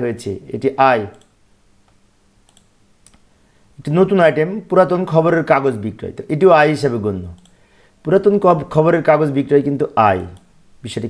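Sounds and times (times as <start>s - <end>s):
faint computer mouse clicks: 1.1s - 3.3s, 7.4s - 7.6s.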